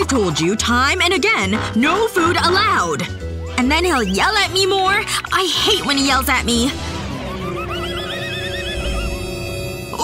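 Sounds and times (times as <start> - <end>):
background music: 0.0 - 10.0
high quavering wail: 7.1 - 10.0.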